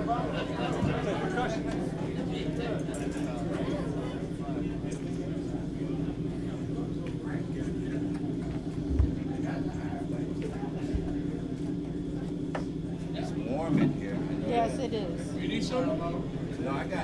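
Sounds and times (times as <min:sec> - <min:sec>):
murmuring voices: 0:00.0 - 0:17.0
amplifier hum: 0:05.2 - 0:17.0.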